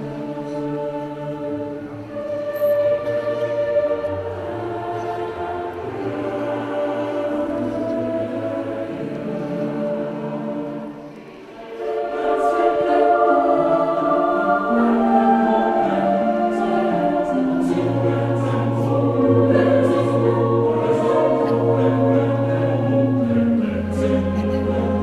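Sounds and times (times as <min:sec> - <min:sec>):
choir singing a slow hymn: 0:00.0 - 0:25.0.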